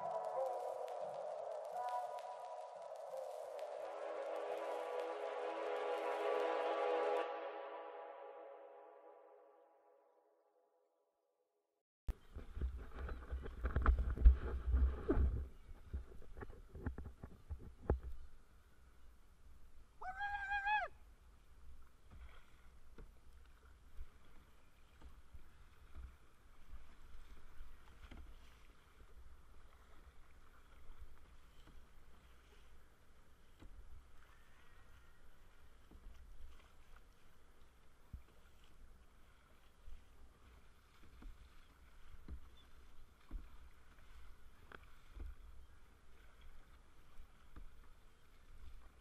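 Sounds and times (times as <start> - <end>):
paddle splashes: 0.0 - 8.2, 12.1 - 49.0
wind rumble on microphone: 12.1 - 18.4
water lapping at hull: 12.1 - 49.0.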